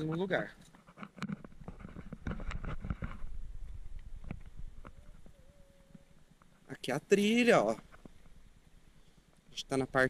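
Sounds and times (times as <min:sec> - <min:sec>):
wind rumble on microphone: 0:01.4 - 0:05.4.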